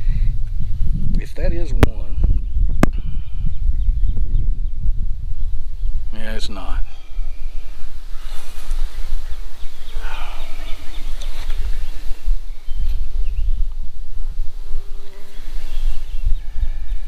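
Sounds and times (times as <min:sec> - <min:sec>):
honey bees buzzing: 0:06.5 - 0:17.0.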